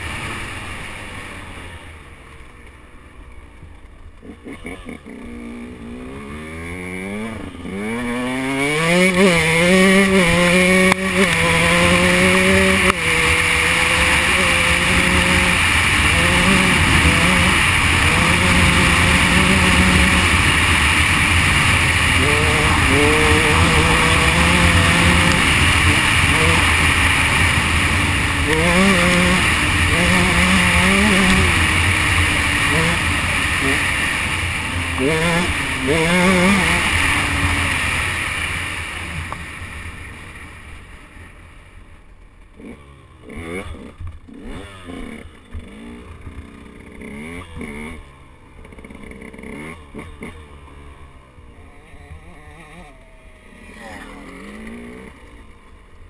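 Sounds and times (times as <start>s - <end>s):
motorcycle engine revving: 0.0s - 56.0s
rushing riding noise: 3.2s - 56.0s.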